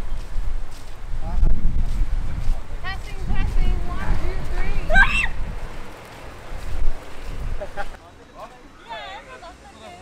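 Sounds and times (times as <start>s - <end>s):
person shrieking: 4.9s - 5.4s.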